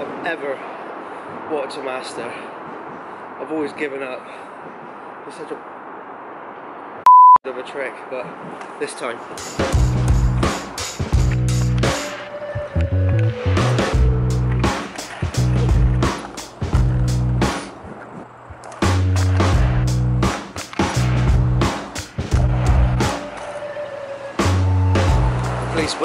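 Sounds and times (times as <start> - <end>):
skateboard wheels rolling on concrete: 8.2 - 26.0
background music with beat: 9.4 - 17.7, 18.8 - 25.9
skateboard tail popping: 14.4 - 23.6.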